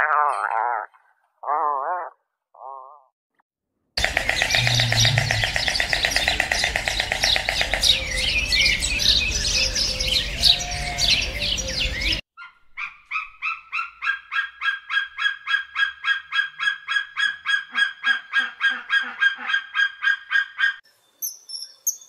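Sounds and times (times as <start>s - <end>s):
small birds chirping: 4.0s - 14.1s, 20.0s - 22.0s.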